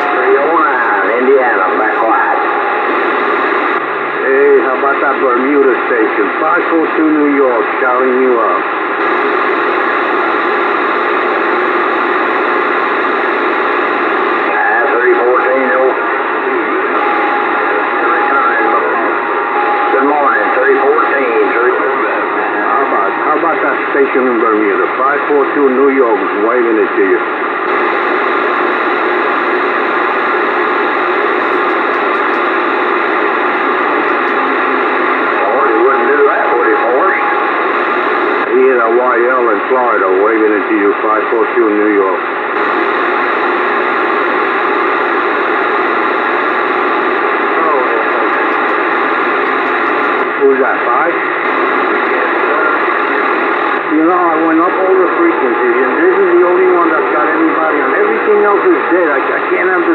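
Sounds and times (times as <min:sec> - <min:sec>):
steady radio whistle: 0:00.0 - 0:07.7, 0:14.4 - 0:27.0, 0:29.8 - 0:41.4
faint garbled radio voices: 0:00.0 - 0:59.9
radio static hiss: 0:00.0 - 0:59.9.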